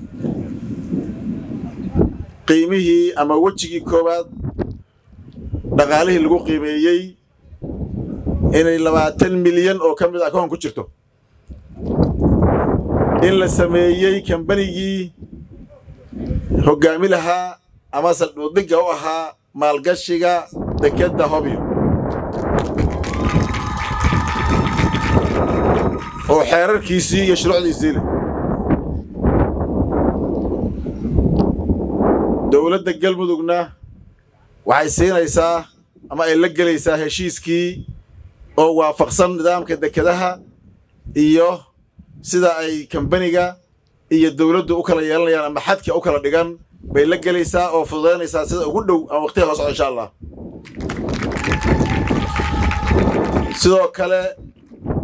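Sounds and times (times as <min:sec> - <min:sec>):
audience crowd noise: 0:22.6 - 0:27.0, 0:51.1 - 0:53.7.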